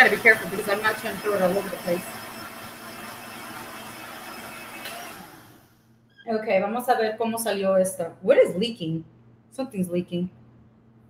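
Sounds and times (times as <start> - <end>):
blender running: 0.0 - 5.8.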